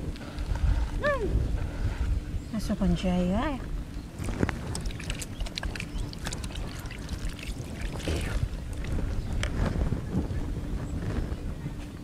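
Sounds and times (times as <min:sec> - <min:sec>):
steady low rumble: 0:00.0 - 0:12.0
water poured into plastic basin: 0:04.3 - 0:08.8.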